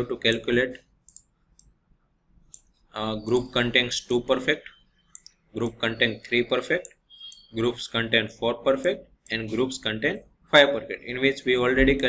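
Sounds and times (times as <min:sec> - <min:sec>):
stylus clicks on tablet: 0:06.7 - 0:07.5.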